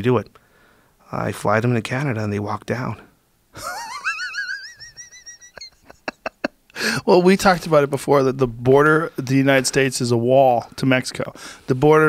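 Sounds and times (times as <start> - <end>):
man's high-pitched laugh: 3.6 - 6.6
short sharp breath puffs: 11.4 - 11.7.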